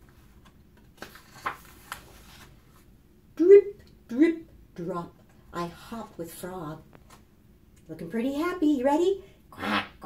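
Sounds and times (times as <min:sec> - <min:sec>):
paper page rustling: 0:00.0 - 0:02.9.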